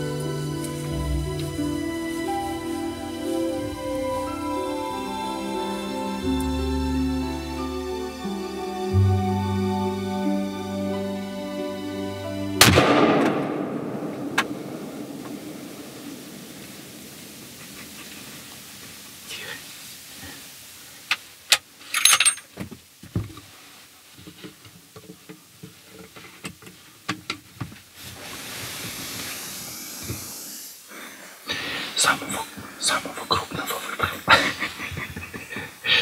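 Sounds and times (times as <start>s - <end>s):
rifle shot with rolling echo: 12.6s - 17.1s.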